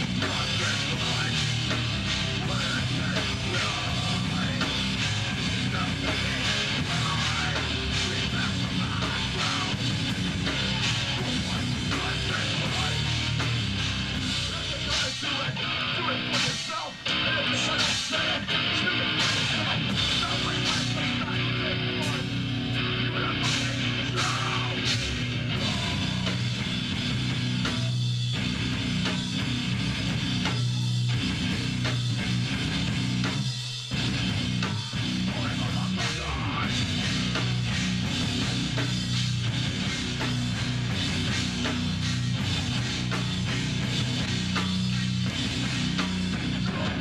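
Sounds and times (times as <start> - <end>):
distorted electric guitars: 0.0 - 47.0
drum kit: 0.0 - 47.0.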